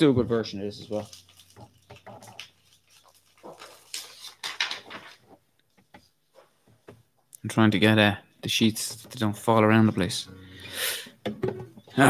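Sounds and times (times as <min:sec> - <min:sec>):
paper sheets rustling: 0:00.7 - 0:05.4.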